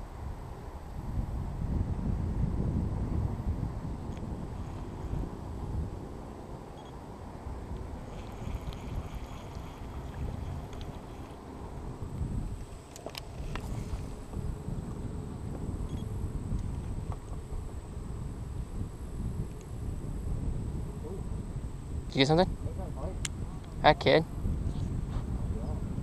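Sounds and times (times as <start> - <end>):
wind rumble: 0.0 - 26.0
water: 3.9 - 18.8.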